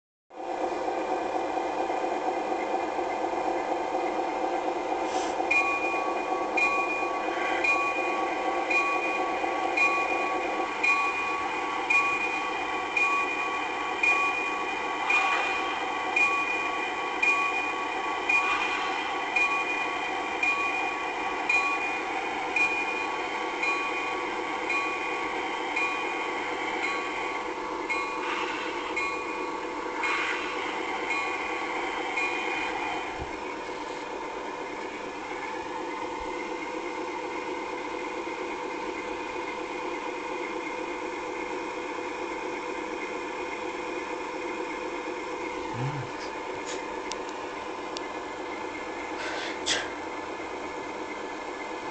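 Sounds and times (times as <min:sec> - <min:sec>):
train running: 0:00.3 - 0:51.9
locomotive bell ringing: 0:05.5 - 0:33.2.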